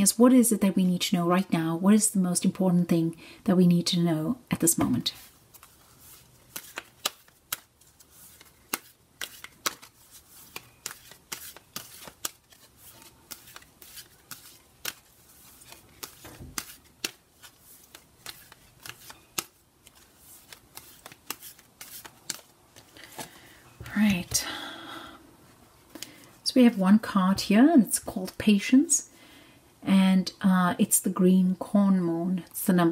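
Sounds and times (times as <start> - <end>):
cards being shuffled: 4.8 - 24.3.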